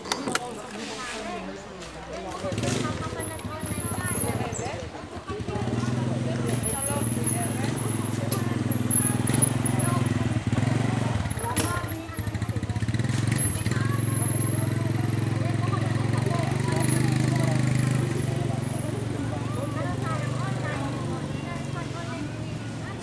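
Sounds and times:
people talking: 0.0 - 23.0
motorcycle engine idling: 2.5 - 23.0.

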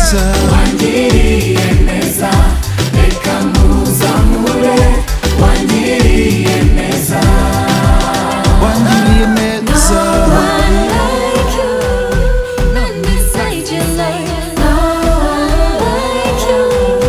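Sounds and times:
drum and bass beat: 0.0 - 17.0
people singing: 0.0 - 17.0.

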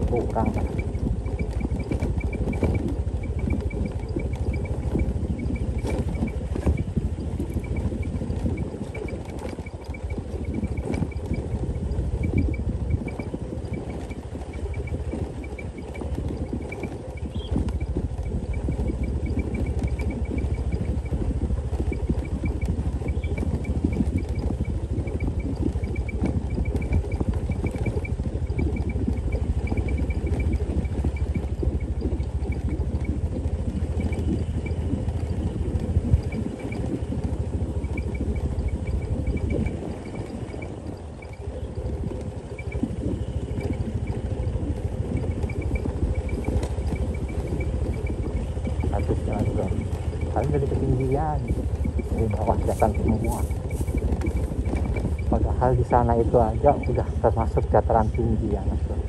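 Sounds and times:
motorcycle engine rumble: 0.0 - 59.0
road rattle on cobblestones: 0.0 - 59.0.

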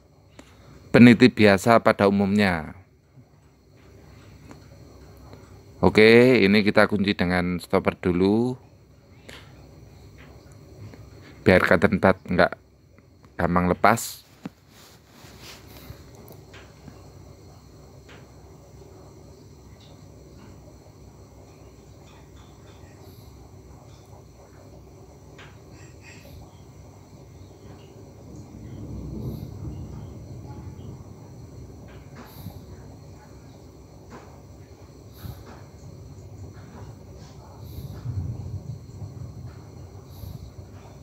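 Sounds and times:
faint steady high tones: 0.0 - 41.0
steady low rumble: 14.2 - 41.0.

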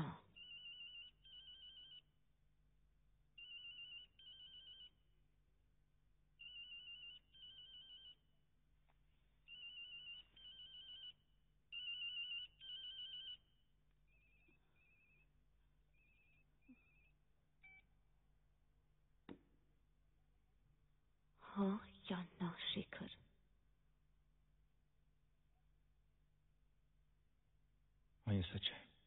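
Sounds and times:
electronic telephone ringing: 0.4 - 2.0, 3.4 - 5.0, 6.4 - 8.2, 9.4 - 13.5, 14.1 - 15.3, 15.9 - 17.8.

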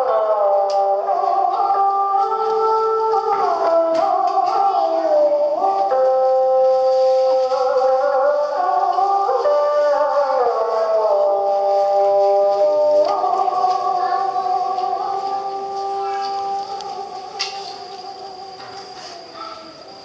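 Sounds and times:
zither ensemble music: 0.0 - 20.0.

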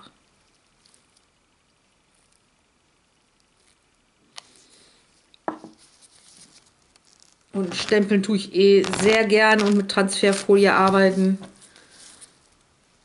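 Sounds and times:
short rustle: 5.8 - 8.0.

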